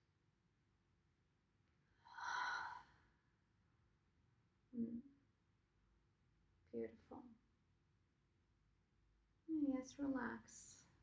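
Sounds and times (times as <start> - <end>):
woman's breathy sigh: 2.0 - 3.0.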